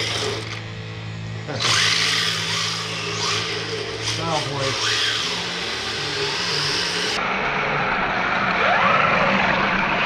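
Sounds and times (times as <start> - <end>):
toy bulldozer motor and tracks: 0.0 - 0.8, 1.4 - 7.2
rising motor whine: 0.0 - 10.0.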